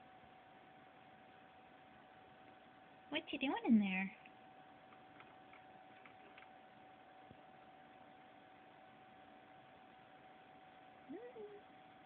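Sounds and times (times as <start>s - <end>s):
faint steady tone: 0.0s - 12.0s.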